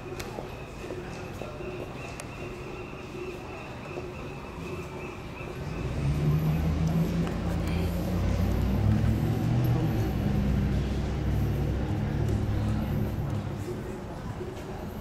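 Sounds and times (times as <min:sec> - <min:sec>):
vehicle engine running: 0:05.6 - 0:14.0.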